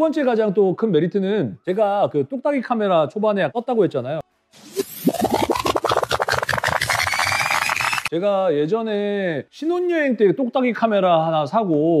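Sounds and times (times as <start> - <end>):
rewind sound effect: 4.6 - 8.1.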